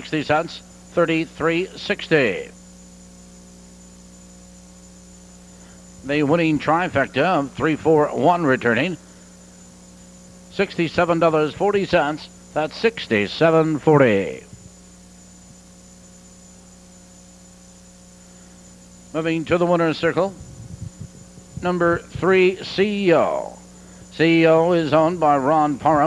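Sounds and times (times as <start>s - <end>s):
electrical mains hum: 0.0s - 26.0s
faint hiss: 0.0s - 26.0s.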